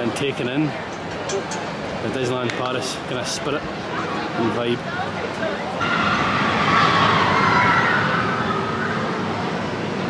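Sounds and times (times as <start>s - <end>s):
riders screaming: 5.8s - 9.2s.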